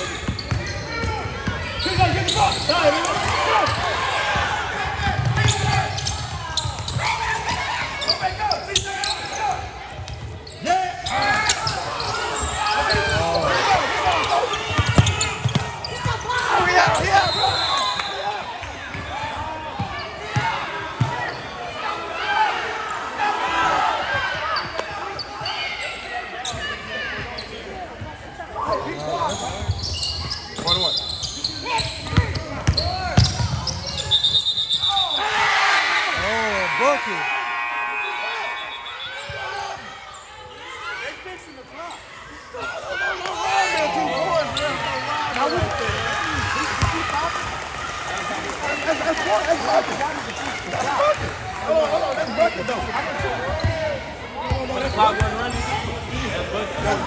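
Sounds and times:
sneaker squeaks: 0.0 - 3.9, 5.0 - 18.2, 21.0 - 21.6, 24.5 - 27.7, 28.6 - 35.2, 52.3 - 55.7.

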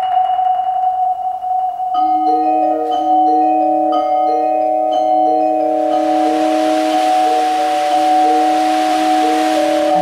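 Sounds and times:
mallet percussion chord: 0.0 - 10.0
steady hissing noise: 0.0 - 10.0.

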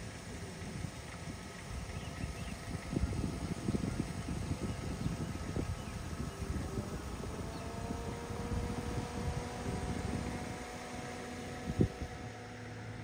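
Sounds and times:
car road and engine noise: 0.0 - 13.0
faint even whine: 0.0 - 13.0.

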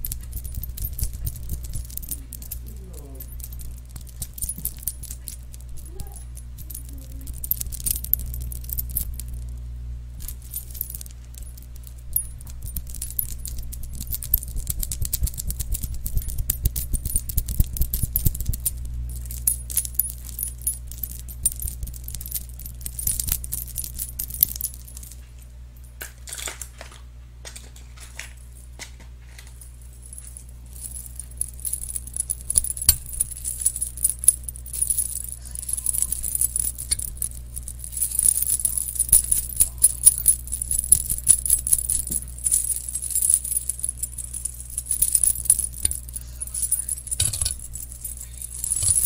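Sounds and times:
metal trinkets jingling: 0.0 - 9.5, 10.2 - 25.2, 29.5 - 49.0
steady low hum: 0.0 - 49.0.

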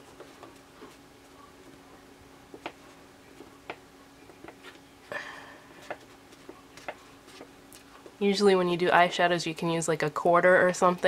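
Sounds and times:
fingertips tapping paper towel: 5.7 - 8.2.

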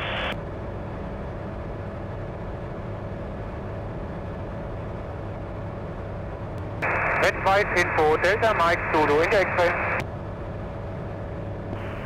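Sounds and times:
light aircraft engine and propeller drone: 0.0 - 12.0.

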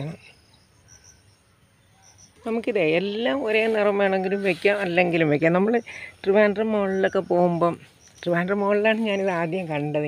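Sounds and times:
faint high-pitched insect chirping: 0.0 - 10.0.

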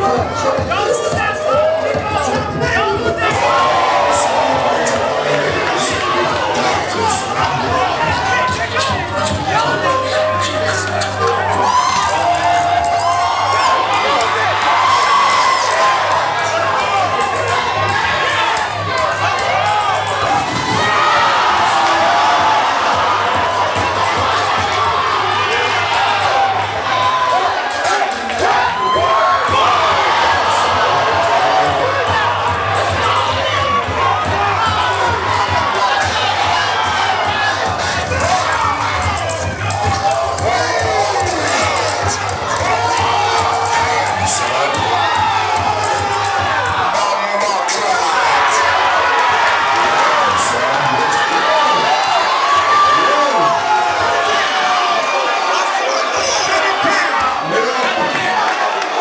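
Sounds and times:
crowd shouting and cheering: 0.0 - 59.0.

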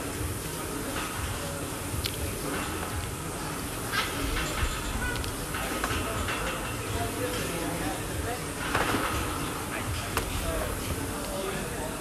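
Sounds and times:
gym background noise: 0.0 - 12.0.

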